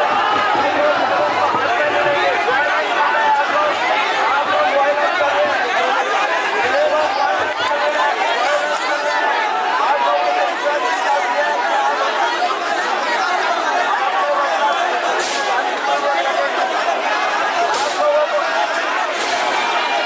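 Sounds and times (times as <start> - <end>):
crowd babble: 0.0 - 20.0.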